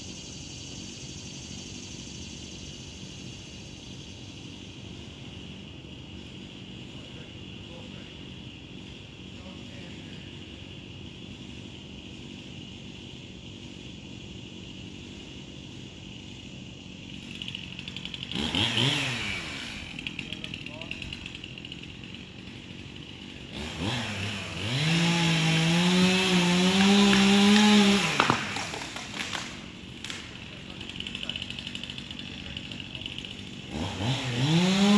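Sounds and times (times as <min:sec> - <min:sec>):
chainsaw cutting wood: 0:17.1 - 0:34.9.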